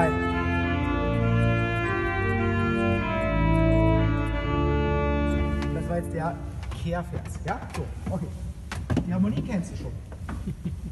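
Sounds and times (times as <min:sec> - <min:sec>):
church organ playing chords: 0:00.0 - 0:06.8.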